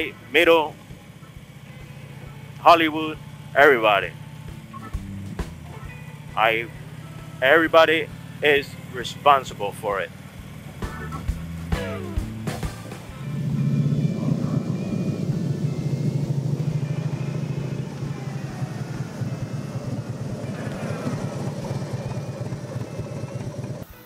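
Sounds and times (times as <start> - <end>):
motorcycle engine running: 0.0 - 24.0.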